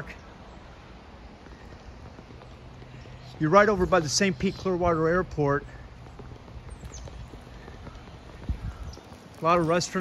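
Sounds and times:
footsteps on pavement: 0.1s - 10.0s.

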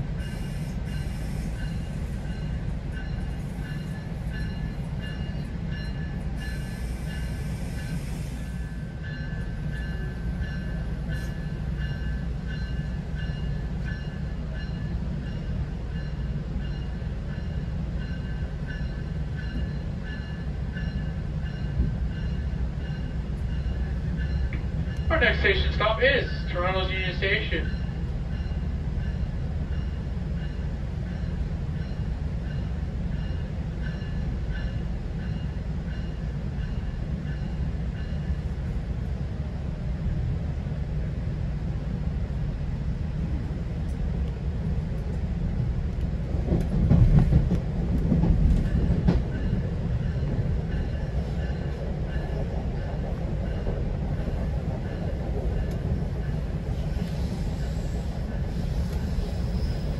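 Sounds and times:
train coach rumbling on track: 0.0s - 59.9s
train rumble and clatter: 0.0s - 59.9s.

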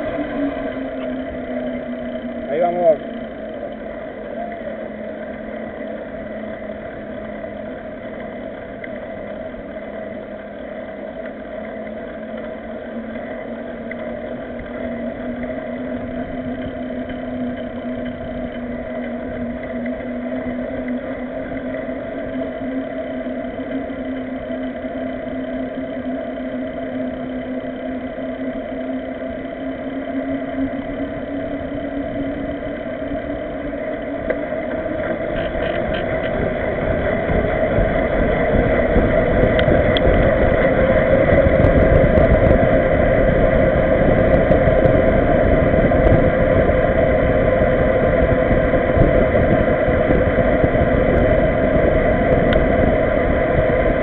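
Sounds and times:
bicycle tyres humming on asphalt: 0.0s - 54.0s
wind rushing noise: 34.8s - 54.0s.

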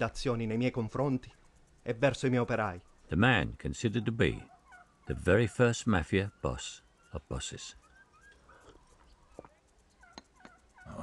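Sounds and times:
short bird calls: 2.8s - 11.0s.

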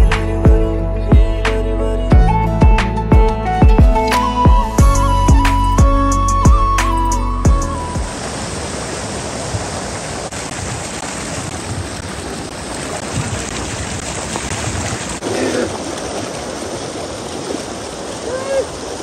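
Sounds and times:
water rushing over rocks: 8.0s - 19.0s.

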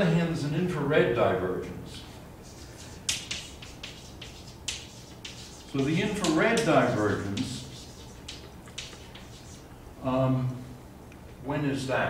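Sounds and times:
chalk tapping and scratching: 2.4s - 9.8s.

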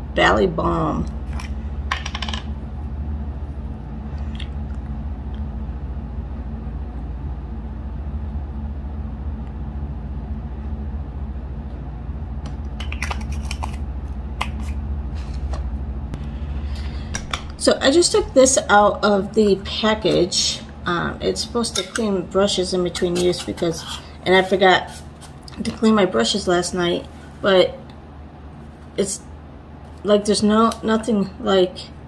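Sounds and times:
low hum: 0.0s - 32.0s.

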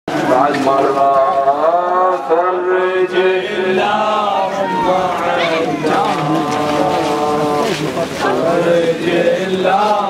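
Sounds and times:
man chanting a lament: 0.1s - 10.0s.

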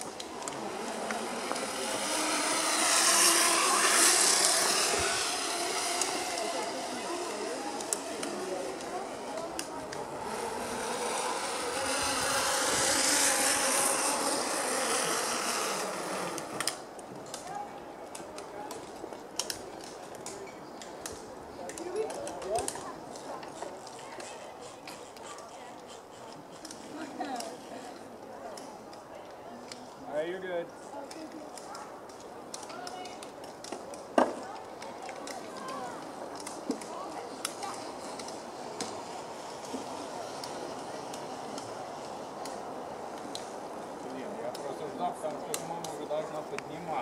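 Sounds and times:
zip-line trolley whirring on cable: 0.0s - 17.6s, 21.8s - 28.1s, 31.6s - 47.0s.

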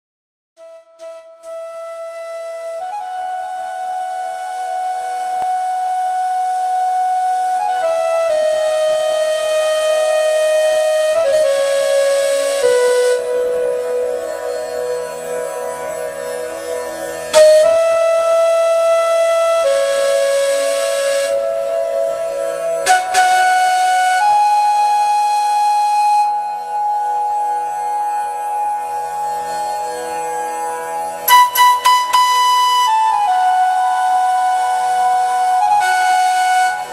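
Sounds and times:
flute playing long notes: 0.6s - 36.9s.

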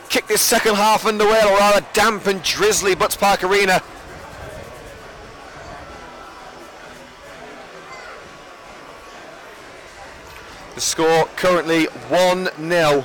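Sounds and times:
distant voices and crowd chatter: 0.0s - 13.0s.

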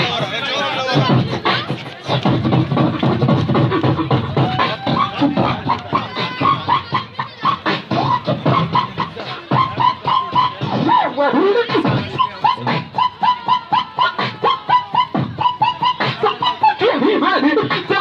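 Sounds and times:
beatboxing into microphone: 0.0s - 18.0s
pitched vocal sounds: 0.0s - 18.0s.

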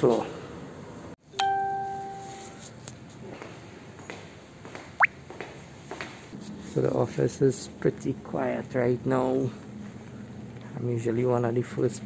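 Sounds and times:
elevator arrival chime: 1.3s - 2.6s.

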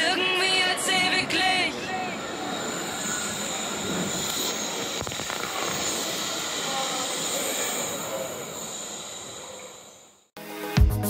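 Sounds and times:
monorail wheels rumbling on rail: 0.0s - 10.3s.

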